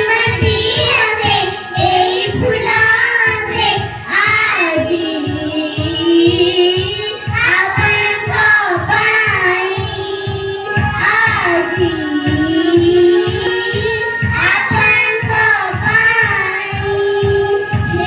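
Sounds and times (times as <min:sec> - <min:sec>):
children singing together: 0:00.0 - 0:18.0
steady low beat: 0:00.0 - 0:18.0.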